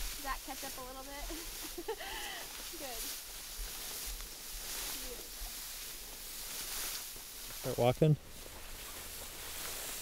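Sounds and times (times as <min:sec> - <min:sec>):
steady wind hiss: 0:00.0 - 0:10.0.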